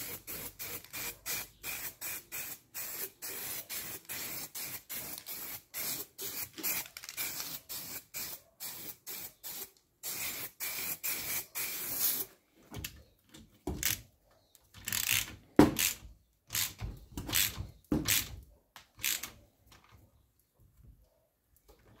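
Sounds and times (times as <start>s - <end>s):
spray paint can hissing in bursts: 0.0s - 12.3s.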